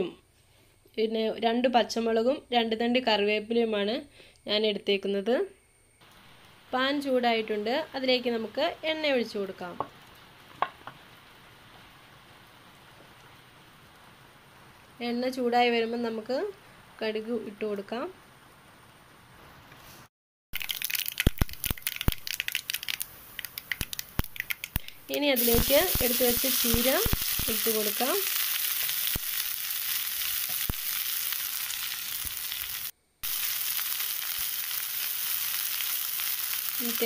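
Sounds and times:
hot oil crackling and popping: 6.0 - 15.0, 20.5 - 37.0
leaves sizzling in a pan: 6.0 - 37.0.

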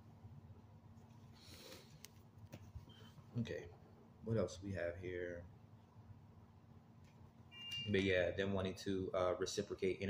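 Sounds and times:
high-pitched electronic beep: 7.5 - 8.0.

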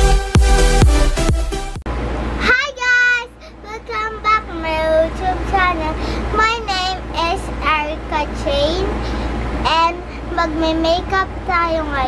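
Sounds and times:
girl singing: 2.4 - 9.0, 9.6 - 12.0.

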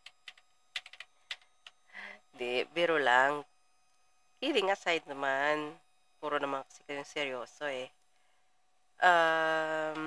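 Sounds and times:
computer keys clicking: 0.0 - 1.8.

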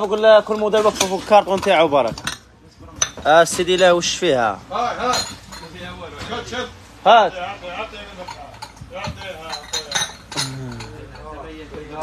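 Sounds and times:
ceramic cup clinking on saucer: 8.2 - 11.3.

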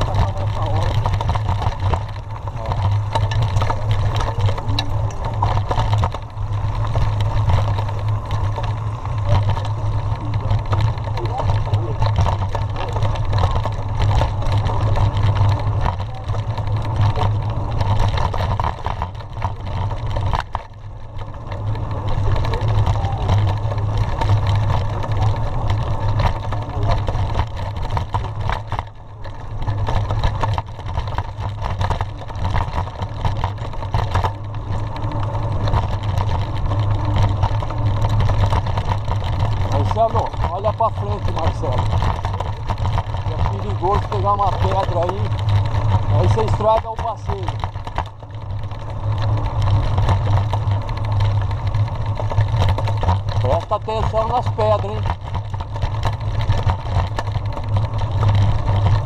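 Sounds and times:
bike rattling clicks: 0.0 - 59.0
tyres rumbling on dirt road: 0.0 - 59.0.

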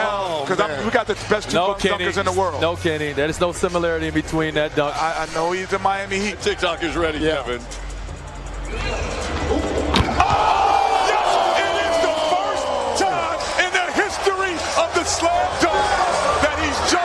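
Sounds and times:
crowd cheering and shouting: 8.6 - 17.0
basketball slamming through rim: 9.9 - 10.5.

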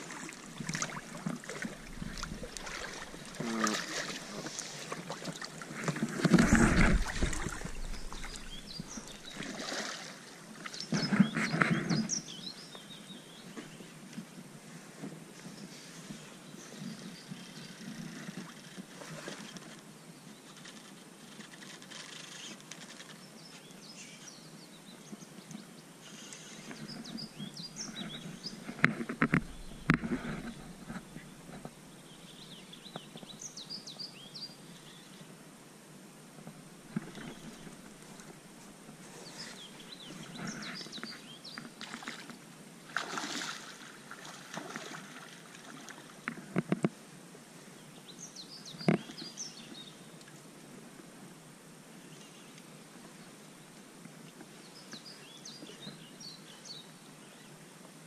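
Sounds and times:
outdoor background hiss: 0.0 - 58.0.

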